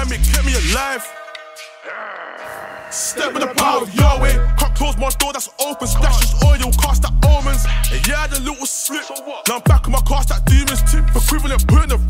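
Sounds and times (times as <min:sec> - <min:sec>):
rapping over a beat: 0:00.0 - 0:12.0
deep bass hit: 0:04.0 - 0:05.2, 0:05.9 - 0:08.3, 0:09.7 - 0:12.0.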